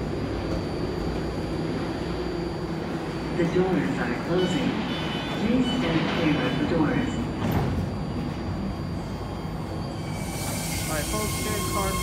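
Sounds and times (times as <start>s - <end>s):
subway train low rumble: 0.0s - 12.0s
train propulsion whine and hiss: 0.0s - 12.0s.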